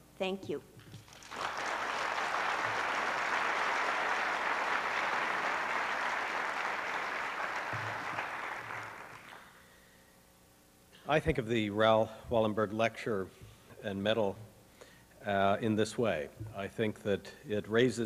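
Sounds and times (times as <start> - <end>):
audience applauding: 1.0 - 9.5.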